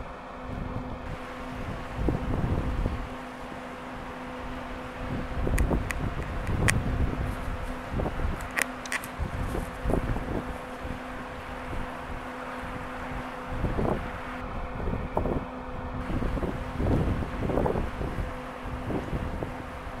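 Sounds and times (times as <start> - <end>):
faint steady hum: 0.0 - 20.0
wind buffeting microphone: 0.4 - 20.0.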